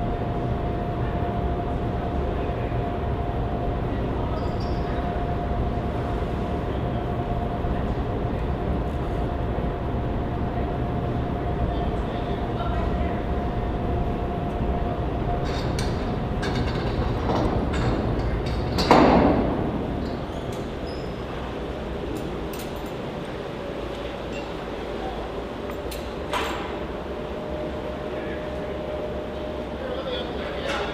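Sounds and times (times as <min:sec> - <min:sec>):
low engine rumble: 0:00.0 - 0:30.9.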